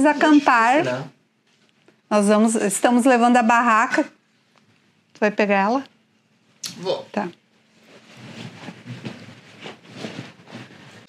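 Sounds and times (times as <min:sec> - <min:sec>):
bags rustling on floor: 0:07.7 - 0:11.0.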